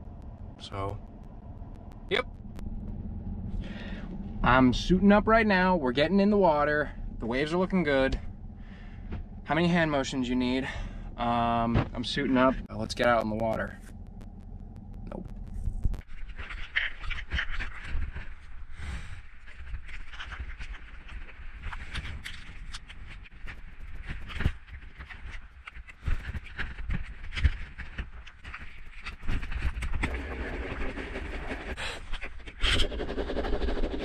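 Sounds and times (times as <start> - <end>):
steady low rumble: 0.0 - 32.1
heavy breathing: 3.5 - 4.3, 8.6 - 9.4, 10.6 - 11.2.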